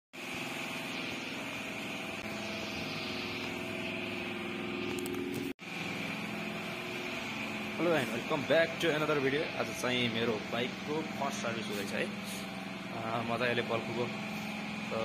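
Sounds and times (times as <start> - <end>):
steady mechanical drone: 0.2 - 15.0.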